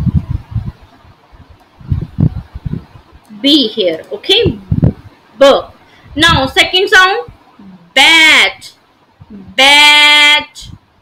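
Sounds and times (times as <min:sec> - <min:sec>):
microphone handling thumps: 0:01.4 - 0:03.2, 0:04.4 - 0:05.1.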